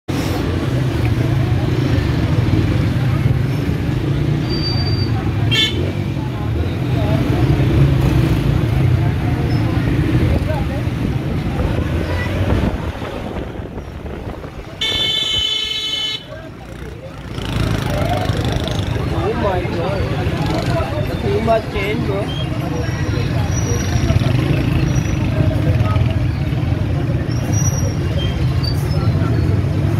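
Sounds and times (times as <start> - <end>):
people's voices: 0.1 - 29.9
vehicle engines rumbling: 0.1 - 29.9
vehicle horn: 5.5 - 5.8, 14.8 - 16.3.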